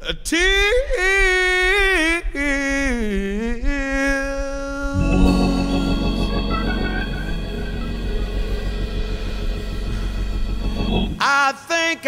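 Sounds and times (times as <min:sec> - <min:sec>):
steady drum pulse: 0:04.7 - 0:11.2
electric guitar: 0:05.0 - 0:11.2
organ sustained chords: 0:05.0 - 0:11.3.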